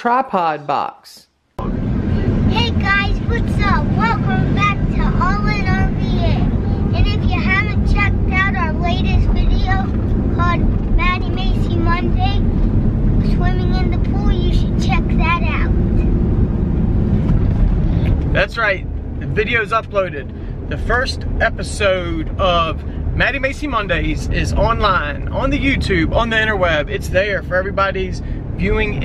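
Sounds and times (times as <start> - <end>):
car road and engine rumble: 1.6 - 29.0
girl talking: 2.5 - 12.5, 13.2 - 15.8.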